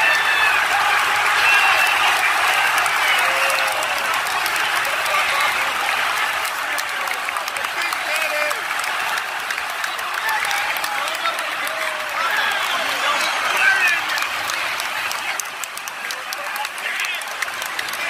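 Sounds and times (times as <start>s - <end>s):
stadium crowd cheering: 0.0s - 18.0s.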